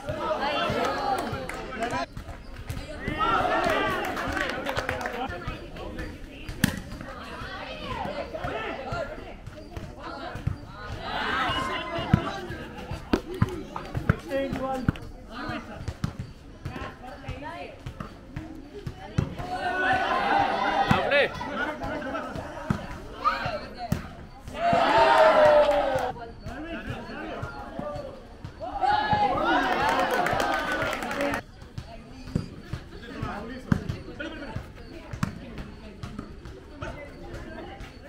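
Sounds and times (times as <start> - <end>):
volleyball thumping: 0.0 - 31.4
voices talking: 0.0 - 38.0
people shouting: 3.0 - 5.2, 7.2 - 9.2, 10.8 - 12.4, 19.4 - 22.4, 24.5 - 26.1, 28.6 - 31.4
ball being struck: 6.5 - 7.0.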